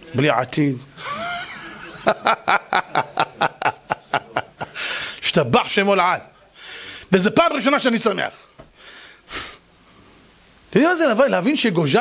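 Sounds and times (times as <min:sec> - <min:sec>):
man laughing: 0:01.0 - 0:04.8.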